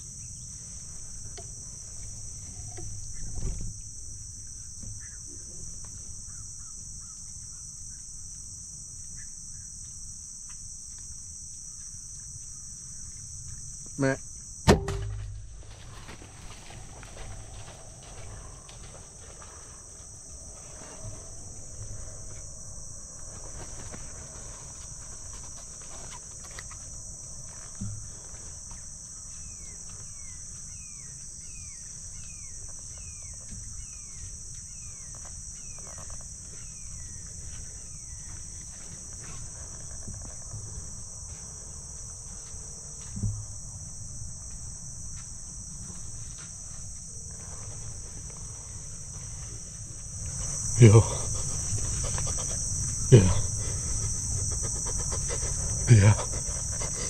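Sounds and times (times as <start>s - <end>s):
insect chorus: 0.0s - 57.0s
soft low thumps: 14.7s - 24.2s.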